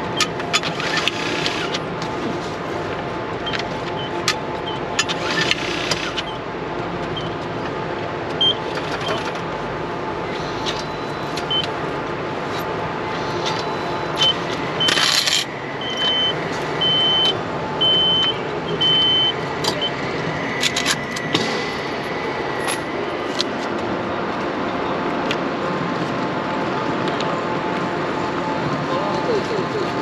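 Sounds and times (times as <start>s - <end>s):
steady background noise: 0.0s - 30.0s
ticket machine beeping: 0.1s - 1.9s, 3.4s - 6.4s, 8.4s - 9.3s, 10.3s - 11.8s, 13.1s - 21.6s.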